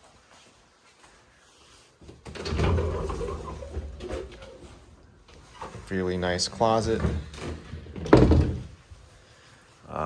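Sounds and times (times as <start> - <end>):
closet doors rumbling open: 2.2 - 4.8, 6.5 - 8.8.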